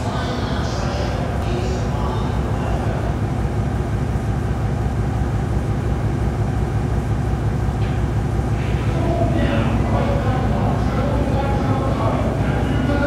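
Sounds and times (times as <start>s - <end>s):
droning sound collage: 0.0s - 13.0s.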